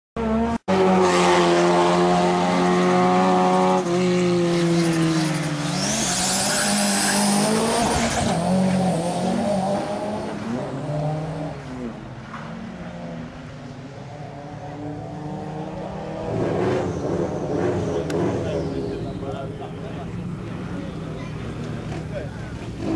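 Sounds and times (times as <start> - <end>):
race car engine at high revs: 0.2 - 22.9.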